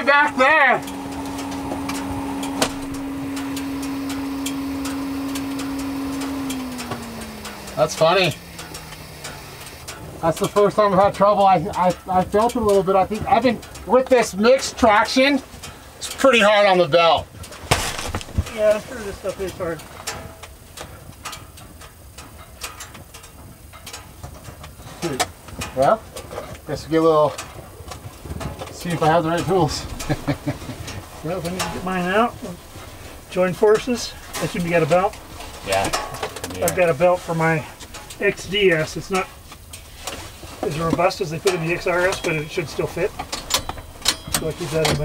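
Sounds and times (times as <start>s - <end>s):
engine idling: 0.0s - 45.0s.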